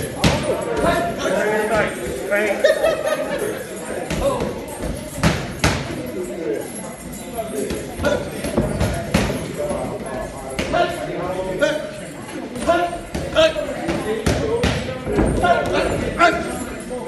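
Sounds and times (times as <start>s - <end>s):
voices talking: 0.0s - 17.0s.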